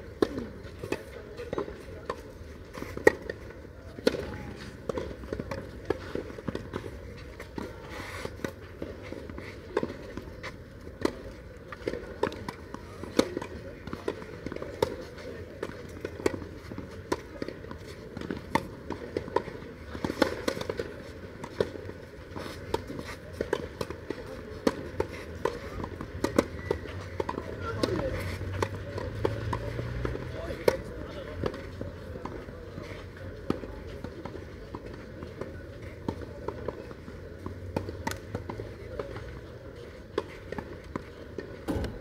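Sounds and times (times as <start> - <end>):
tennis balls struck by rackets: 0.0 - 42.0.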